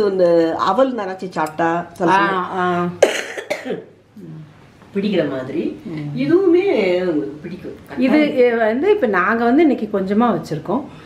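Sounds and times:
woman coughing: 3.0 - 4.0
woman's voice: 4.2 - 11.0.

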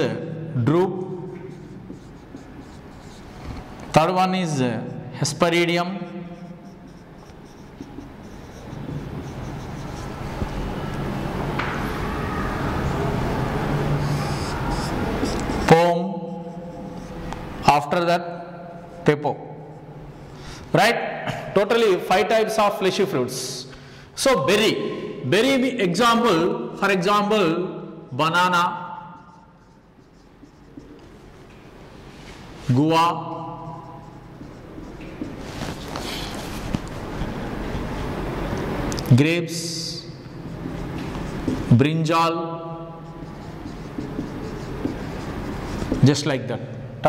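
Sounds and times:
marker scratching on whiteboard: 1.0 - 20.8, 21.4 - 38.2, 39.6 - 46.7.

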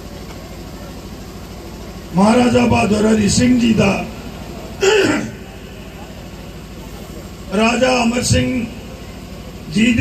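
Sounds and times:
man clearing throat: 4.8 - 5.4.

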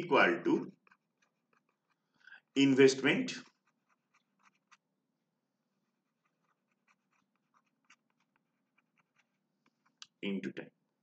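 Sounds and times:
stylus scratching on pen tablet: 0.0 - 10.1.

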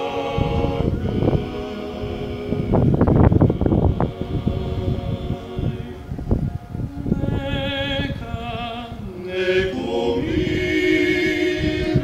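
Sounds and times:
group singing in harmony: 0.0 - 12.0
wind buffeting microphone: 0.0 - 12.0.

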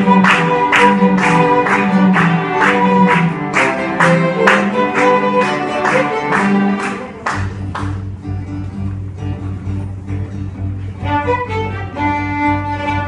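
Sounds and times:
bass guitar: 0.0 - 13.0
string ensemble playing: 0.0 - 13.0.

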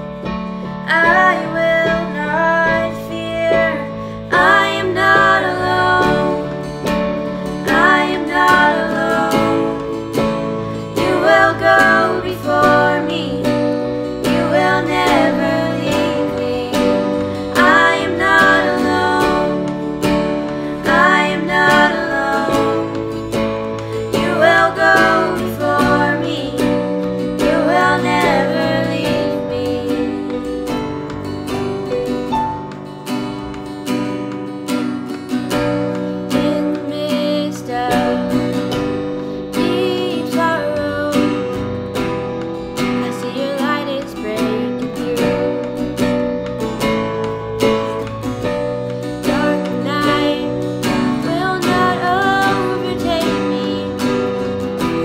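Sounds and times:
keyboard piano chords: 0.0 - 36.8
acoustic guitar strumming: 0.0 - 55.0
girls singing: 0.9 - 30.7, 39.6 - 41.6, 43.0 - 46.2, 49.2 - 55.0.

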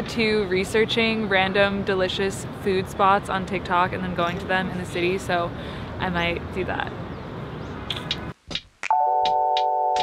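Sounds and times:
city background noise: 0.0 - 10.0.

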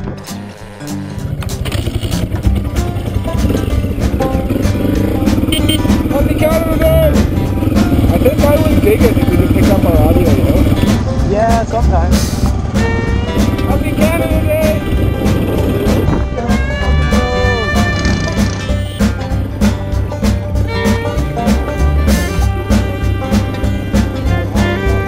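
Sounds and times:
motorcycle engine pulling away: 0.0 - 11.3, 12.2 - 16.2, 17.1 - 19.8
background music: 0.0 - 25.0
person talking: 13.6 - 14.8.

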